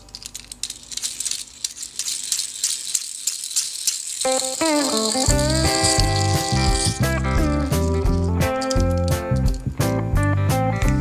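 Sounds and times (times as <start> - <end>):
toy balls rattling in plastic box: 0.0 - 9.8.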